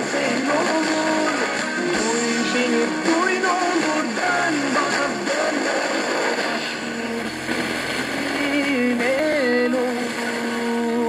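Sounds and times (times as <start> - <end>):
radio static hiss: 0.0 - 10.9
faint music with singing: 0.0 - 11.0.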